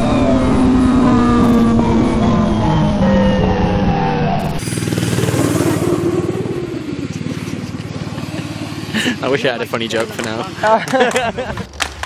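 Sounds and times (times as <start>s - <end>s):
snowmobile engine running: 0.0s - 11.6s.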